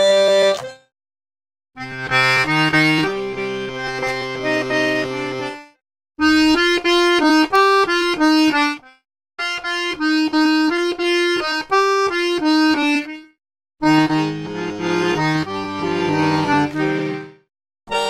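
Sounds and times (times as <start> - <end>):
accordion melody: 0.0 - 0.9, 1.8 - 18.0.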